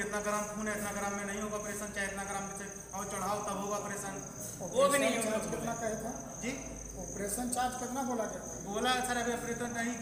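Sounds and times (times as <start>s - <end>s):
man speaking: 0.0s - 10.0s
steady high-pitched whine: 0.0s - 10.0s.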